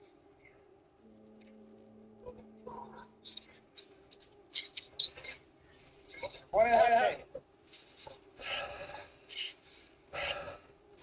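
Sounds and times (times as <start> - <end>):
person breathing hard: 8.0 - 10.7.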